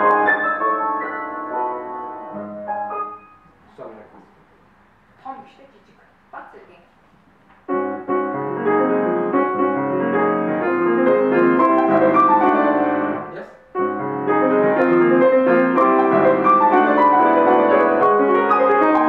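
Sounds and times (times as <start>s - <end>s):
grand piano chords: 0.0s - 4.2s, 7.6s - 19.0s.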